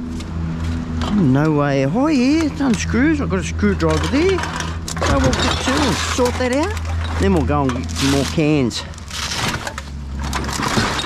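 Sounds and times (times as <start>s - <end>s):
cans and bottles crunching: 3.9s - 11.0s.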